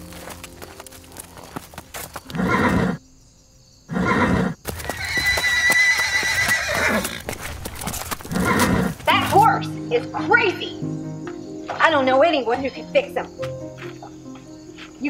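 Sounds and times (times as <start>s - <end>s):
hooves striking dirt: 0.0s - 3.0s, 4.6s - 15.0s
horse neighing: 2.3s - 3.0s, 3.9s - 9.1s.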